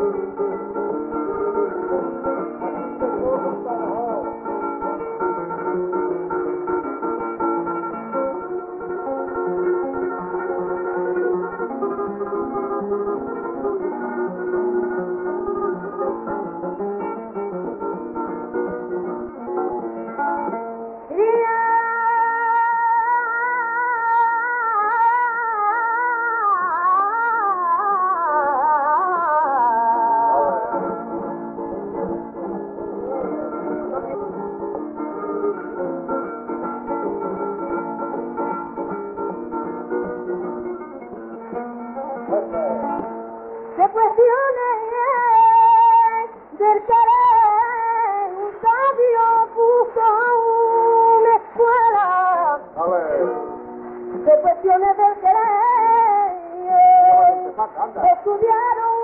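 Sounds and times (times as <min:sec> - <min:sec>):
acoustic guitar playing: 0:00.0 - 0:59.0
woman singing ornamented line: 0:21.1 - 0:30.8.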